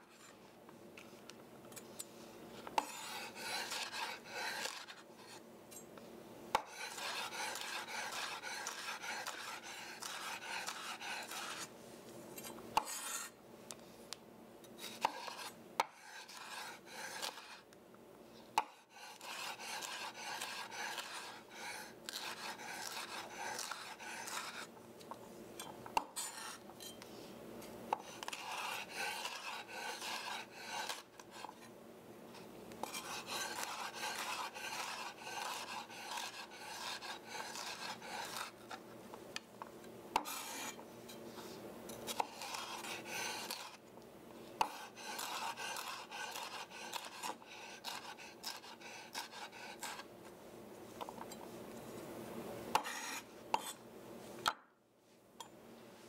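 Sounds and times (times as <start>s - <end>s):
knife dicing pepper on wooden board: 2.8s - 5.0s, 6.5s - 11.7s, 12.4s - 13.3s, 14.8s - 17.6s, 18.6s - 24.7s, 27.9s - 31.6s, 32.8s - 38.5s, 40.2s - 40.8s, 41.9s - 43.8s, 44.6s - 50.0s, 52.7s - 53.8s.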